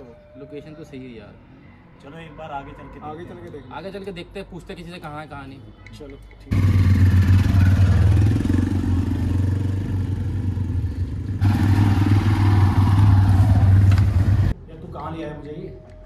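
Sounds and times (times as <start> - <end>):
motorcycle engines droning: 6.5 - 14.6.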